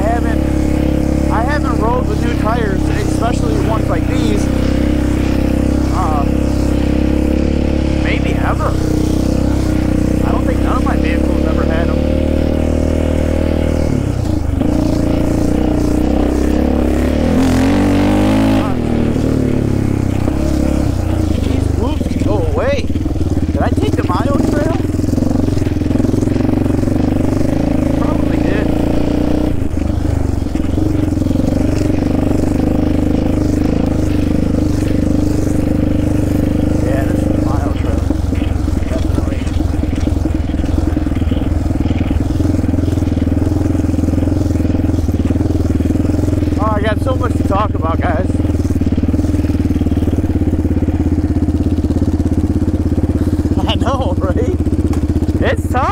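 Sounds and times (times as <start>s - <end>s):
quad engine running: 0.0s - 55.9s.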